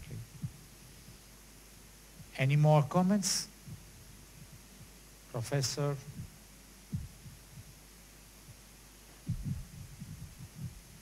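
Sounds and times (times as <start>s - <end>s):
microphone handling thumps: 0.0s - 1.2s, 3.6s - 5.0s, 6.0s - 7.8s, 8.5s - 11.0s
low electrical hum: 0.0s - 11.0s.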